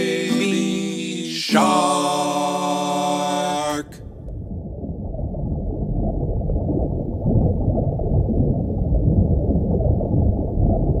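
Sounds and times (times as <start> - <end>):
muffled underwater water rush: 3.9 - 11.0.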